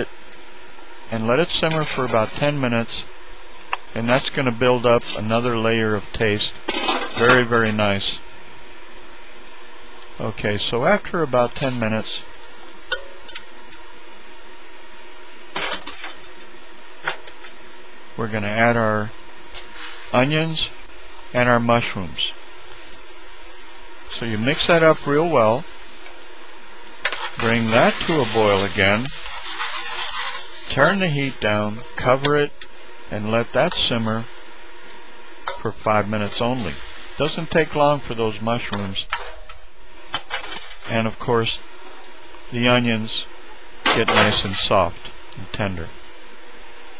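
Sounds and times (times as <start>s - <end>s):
broth simmering hiss: 0.0s - 17.5s, 18.4s - 39.1s
metal spoon scraping skillet: 27.0s - 31.4s.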